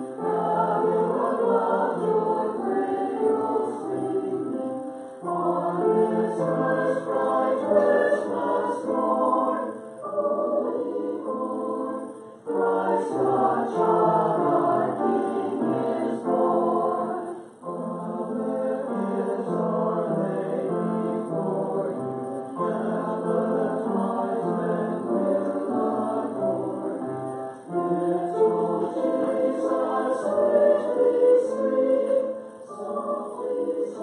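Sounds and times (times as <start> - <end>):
church choir singing: 0.0 - 34.0.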